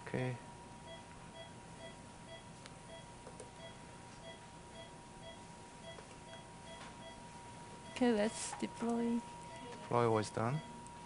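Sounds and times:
patient monitor beeping: 0.8 - 11.0.

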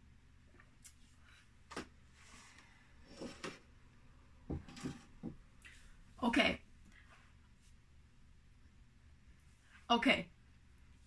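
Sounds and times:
items knocking on wooden table: 4.5 - 5.5.

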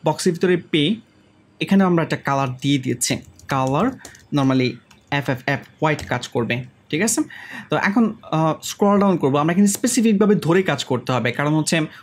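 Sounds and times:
man speaking: 1.6 - 12.0
computer keyboard typing: 2.4 - 5.3, 5.9 - 6.3.

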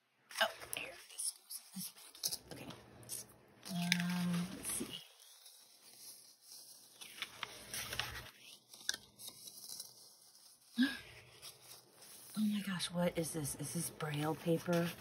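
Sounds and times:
paper rustling and crinkling: 0.3 - 15.0.

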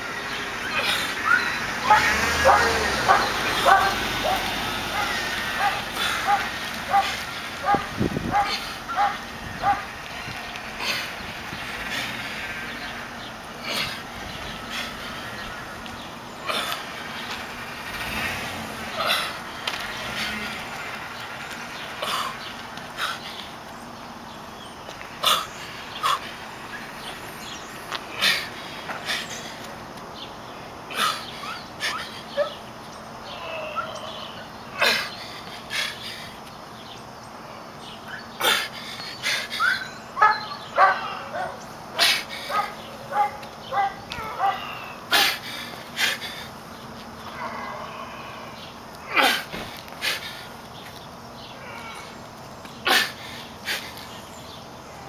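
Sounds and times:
outdoor background noise: 0.0 - 55.0
man breathing and grunting: 0.6 - 9.0, 9.8 - 15.8, 16.4 - 17.2, 18.0 - 21.1, 21.9 - 23.6, 25.2 - 26.5, 27.3 - 29.7, 30.8 - 32.4, 33.3 - 36.5, 38.4 - 39.8, 41.0 - 43.1, 44.4 - 46.7, 47.3 - 50.6, 52.8 - 54.1
man grunting and exhaling: 47.4 - 50.3.

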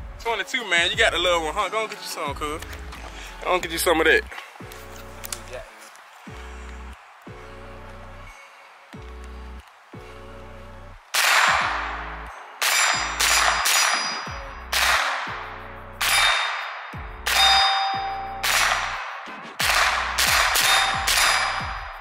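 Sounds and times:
background music with bass beat: 0.0 - 22.0
rifle shots: 11.1 - 11.9, 12.6 - 15.4, 16.0 - 22.0
steel target clanging: 12.6 - 15.0, 16.0 - 21.8.

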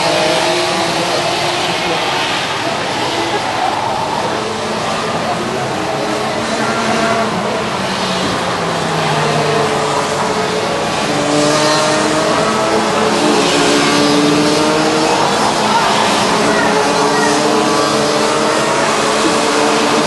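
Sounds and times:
kart engines buzzing: 0.0 - 20.0.

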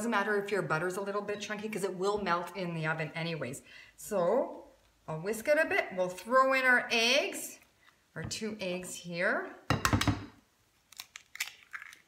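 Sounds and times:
eggshell cracking: 10.8 - 12.0.

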